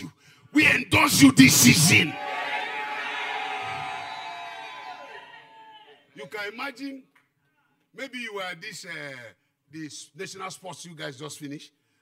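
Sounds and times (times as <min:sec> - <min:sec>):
congregation cheering: 0:01.4 - 0:06.1.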